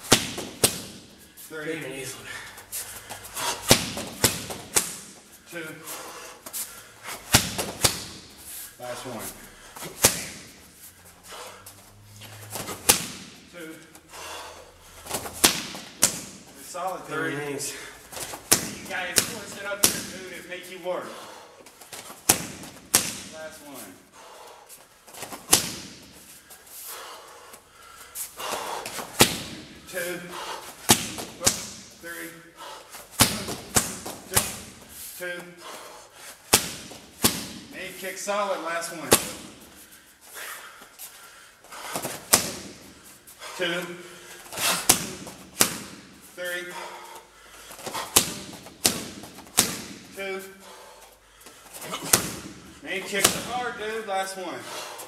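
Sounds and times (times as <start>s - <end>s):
kick smacking a pad: 0.0s - 1.0s, 3.7s - 5.0s, 7.3s - 8.2s, 12.6s - 13.3s, 25.3s - 26.0s, 30.9s - 31.8s, 33.2s - 34.7s, 36.5s - 37.7s, 42.0s - 42.8s, 47.9s - 50.1s
strikes smacking pads: 0.0s - 1.1s, 3.6s - 5.2s, 7.3s - 8.3s, 9.8s - 10.5s, 12.5s - 13.4s, 15.1s - 16.4s, 18.2s - 20.2s, 21.9s - 23.4s, 25.2s - 26.1s, 28.8s - 29.7s, 30.8s - 32.0s, 33.2s - 34.8s, 36.5s - 37.8s, 39.1s - 39.6s, 42.0s - 42.8s, 44.6s - 46.2s, 47.8s - 50.2s, 51.8s - 53.6s.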